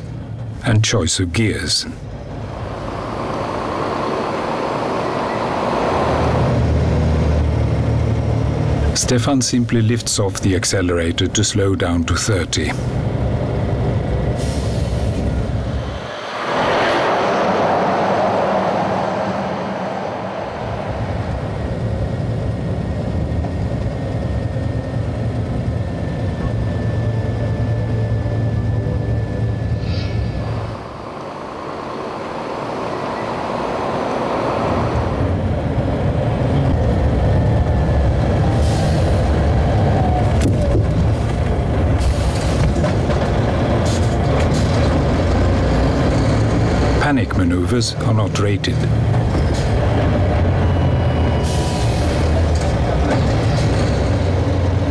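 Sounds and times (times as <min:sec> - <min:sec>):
truck diesel engine rumble: 0:00.0 - 0:54.9.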